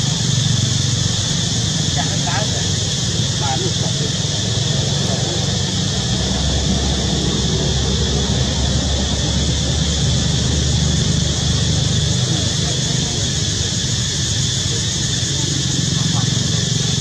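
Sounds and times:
constant high hiss: 0.0s - 17.0s.

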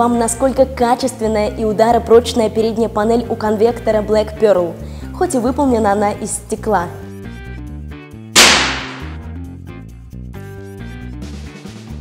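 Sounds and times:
background music: 0.0s - 12.0s
heater smacking onto floor: 8.4s - 9.2s.

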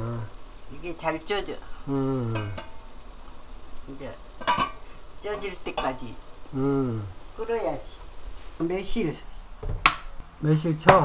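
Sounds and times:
metal lid clink: 2.3s - 2.8s, 4.4s - 4.8s.

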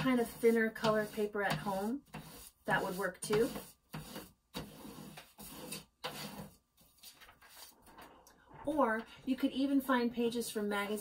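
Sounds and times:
paper rustling and sliding: 4.7s - 8.2s.

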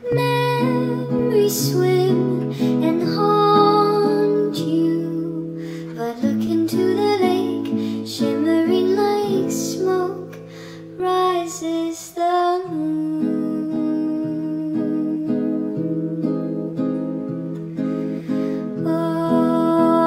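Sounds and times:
plucked acoustic guitar: 0.0s - 11.6s, 12.5s - 20.0s
woman singing softly: 0.0s - 16.8s, 18.6s - 20.0s.

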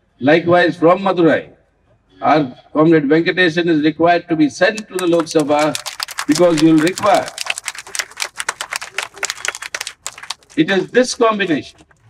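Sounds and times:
rapid sharp cracks and pops: 4.8s - 12.0s.

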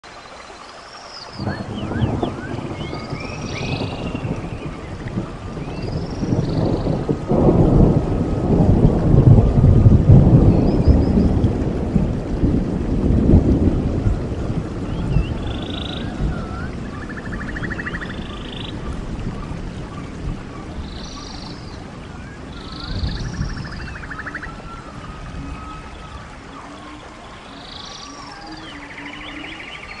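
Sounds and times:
rain hissing: 0.0s - 30.0s
rolling thunder: 1.4s - 30.0s.

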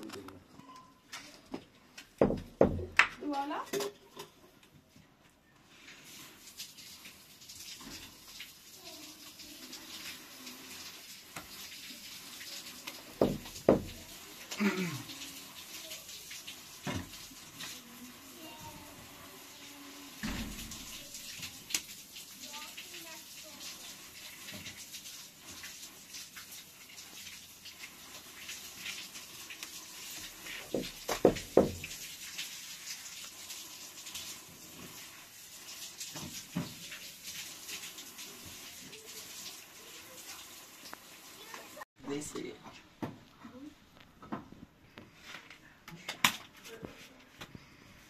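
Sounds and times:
sharp knocks: 2.2s - 3.1s, 13.2s - 14.0s, 30.8s - 31.9s.

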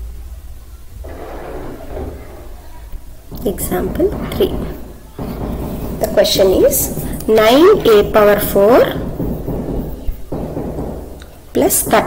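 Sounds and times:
faint muffled sounds: 0.0s - 12.0s.

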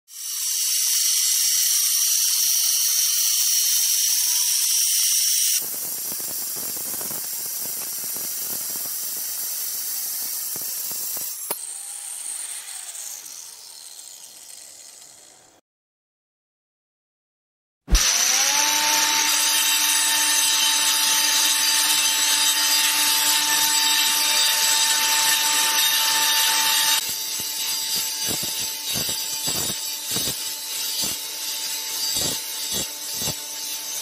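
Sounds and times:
angle grinder cutting tile: 0.1s - 15.6s, 17.9s - 34.0s.

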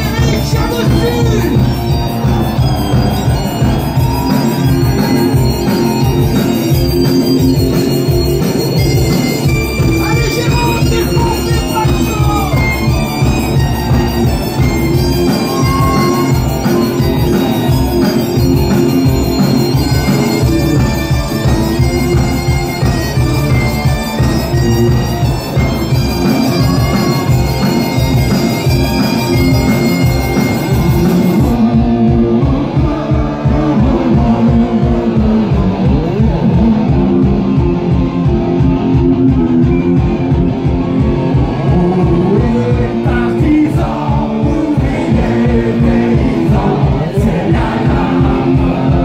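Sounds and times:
bagpipes playing melody: 0.0s - 31.6s
distorted electric guitar: 0.0s - 49.0s
steady drum beat: 0.0s - 49.0s.

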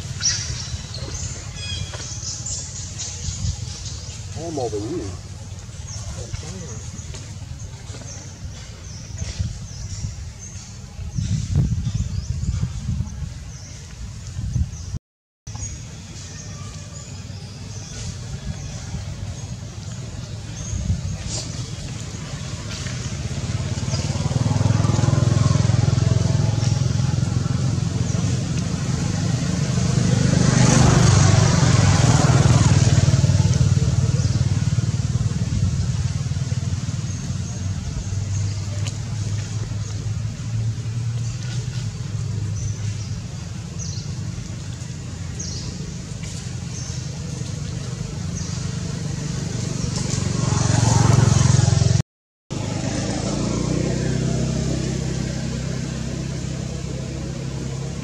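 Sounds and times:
motor vehicles passing: 0.0s - 14.9s, 15.6s - 58.0s.

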